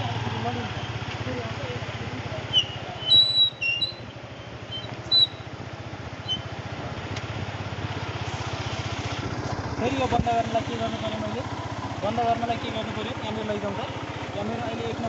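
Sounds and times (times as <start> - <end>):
motorcycle engine running: 0.0 - 15.0
short high-pitched chirps: 2.5 - 4.1, 4.7 - 5.4, 6.2 - 6.5.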